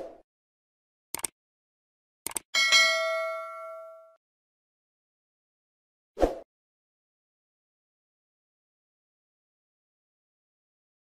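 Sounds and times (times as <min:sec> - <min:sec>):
bell-like notification ding: 0:02.6 - 0:04.2.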